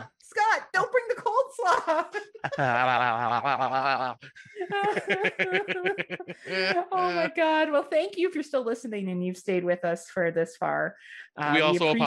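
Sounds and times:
people laughing: 0:01.6 - 0:07.8, 0:11.5 - 0:12.0.

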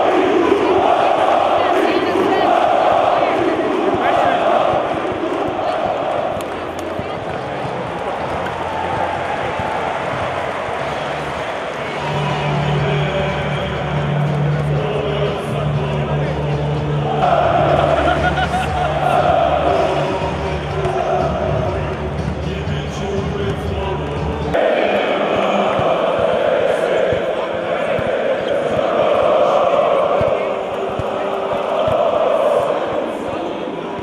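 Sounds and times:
arena crowd chanting: 0:00.0 - 0:34.0.

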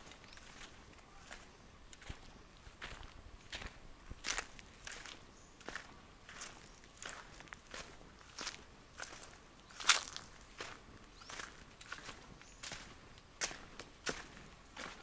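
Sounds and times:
footsteps on sandy dirt: 0:00.0 - 0:15.0.

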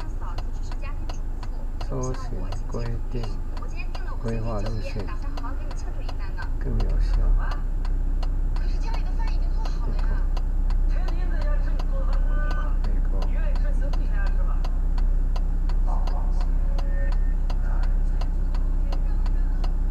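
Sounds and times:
idling engine hum: 0:00.0 - 0:19.9
turn signal ticking: 0:00.0 - 0:19.9.

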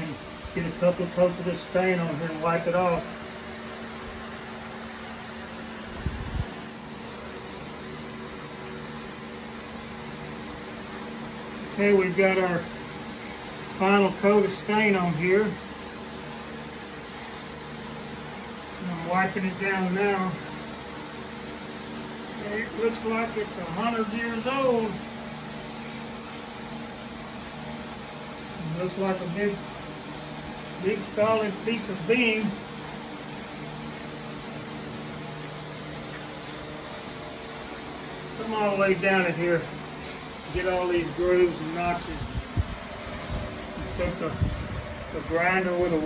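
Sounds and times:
steady machine hum with hiss: 0:00.0 - 0:46.0.

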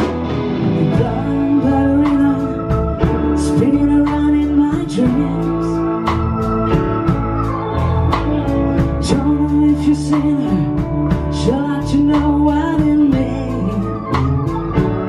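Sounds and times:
organ chord: 0:00.0 - 0:11.5
drums and cymbals: 0:00.0 - 0:15.0
electric guitar bending notes: 0:00.0 - 0:15.0.

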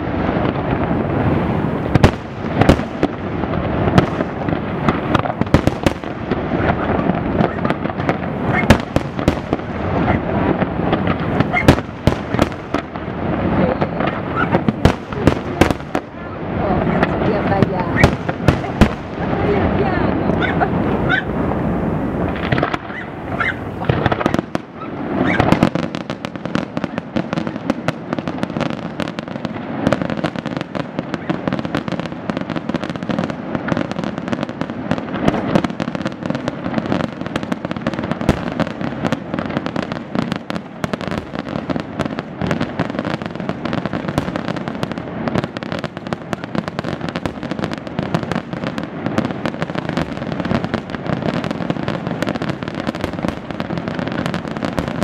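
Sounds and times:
fireworks bursting and crackling: 0:00.0 - 0:55.0.

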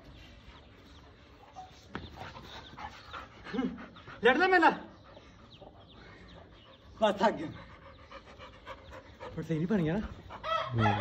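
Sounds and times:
dog panting: 0:00.7 - 0:10.7.

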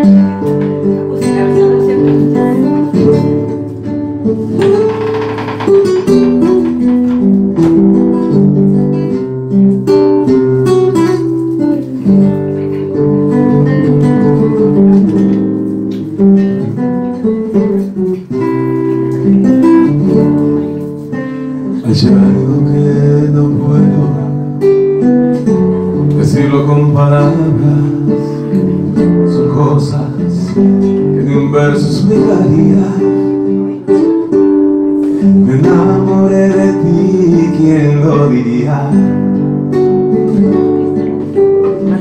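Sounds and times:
classical guitar playing: 0:00.0 - 0:42.0.

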